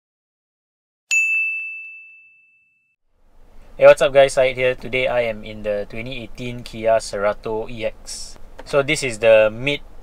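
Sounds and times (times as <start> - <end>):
bell-like ding: 1.1 - 3.0.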